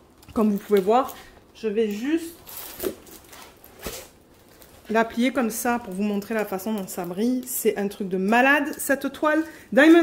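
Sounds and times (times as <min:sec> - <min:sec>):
plastic film rustling: 0:00.0 - 0:10.0
sharp plastic crinkle: 0:00.0 - 0:10.0.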